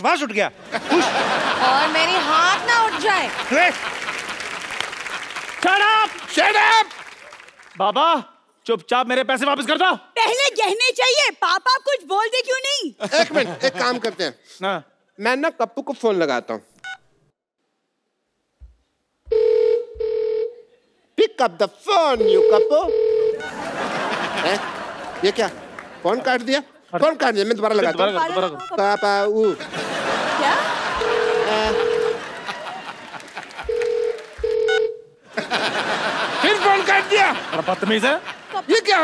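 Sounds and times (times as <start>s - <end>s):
telephone ringback tone: 19.3s - 20.6s, 22.2s - 23.6s, 31.0s - 32.2s, 33.6s - 35.1s.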